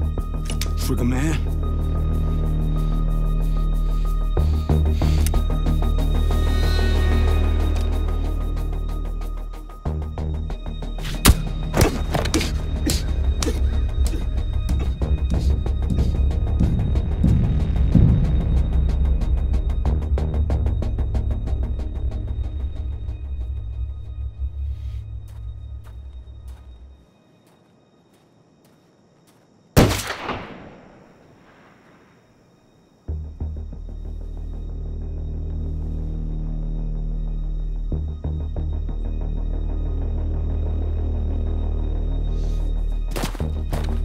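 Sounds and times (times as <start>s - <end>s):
tense film score drone: 0.0s - 27.0s, 33.0s - 44.0s
gunshot with echo: 29.8s - 31.7s.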